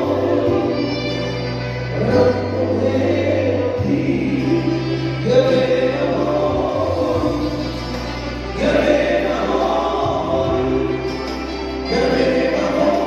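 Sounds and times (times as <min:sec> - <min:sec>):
choir singing: 0:00.0 - 0:13.0
instrumental accompaniment: 0:00.0 - 0:13.0.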